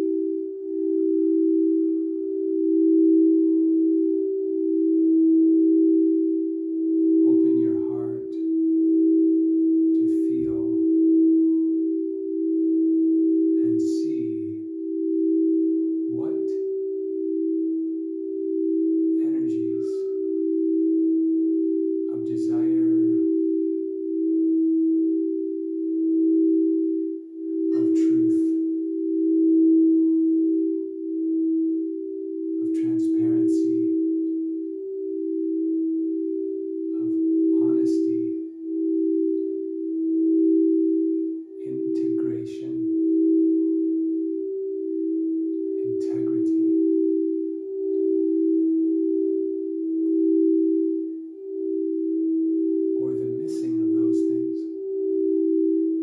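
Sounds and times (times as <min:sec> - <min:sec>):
crystal singing bowls ringing: 0:00.0 - 0:56.0.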